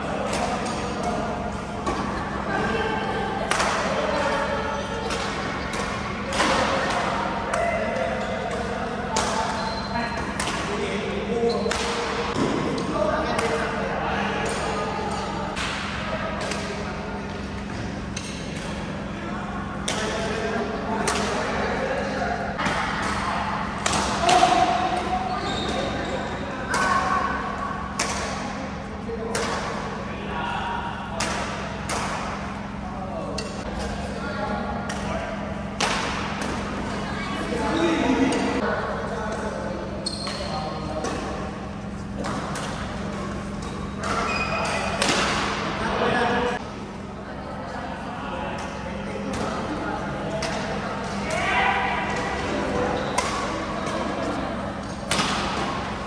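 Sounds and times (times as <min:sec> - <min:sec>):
chatter of voices: 0:00.0 - 0:56.0
racket striking shuttlecock: 0:35.7 - 0:36.7, 0:44.9 - 0:45.6, 0:54.9 - 0:56.0.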